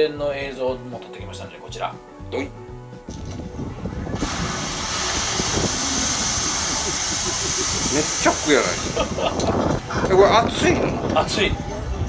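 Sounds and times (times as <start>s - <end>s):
geyser rushing hiss of steam: 4.2s - 10.0s.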